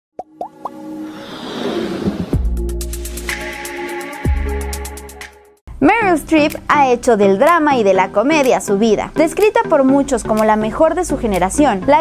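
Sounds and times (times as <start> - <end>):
quick rising plops: 0.2 - 2.6
logo jingle music: 2.4 - 5.5.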